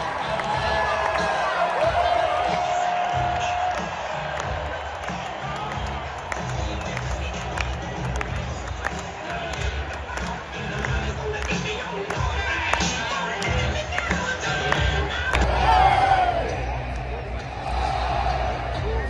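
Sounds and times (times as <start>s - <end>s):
stadium crowd talking and cheering: 0.0s - 19.0s.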